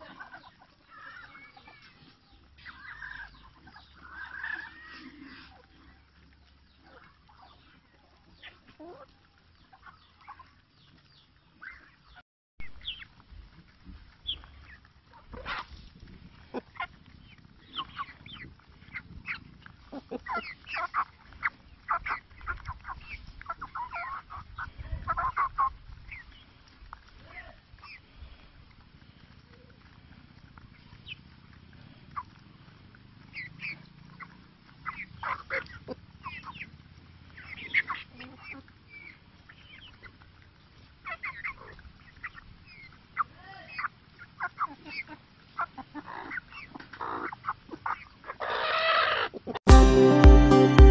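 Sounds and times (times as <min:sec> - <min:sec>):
hens clucking: 0:00.0 - 0:50.9
hens pecking: 0:00.0 - 0:50.9.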